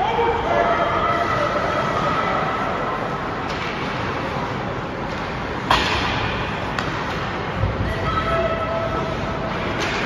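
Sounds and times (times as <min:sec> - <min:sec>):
ice rink background noise: 0:00.0 - 0:10.0.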